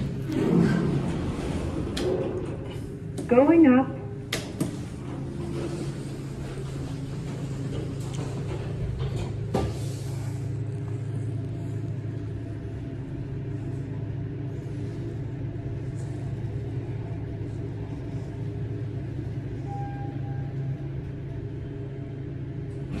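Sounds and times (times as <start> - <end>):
elevator doors shutting: 0.0 - 10.8, 16.0 - 23.0
elevator hum and rumble: 0.0 - 23.0.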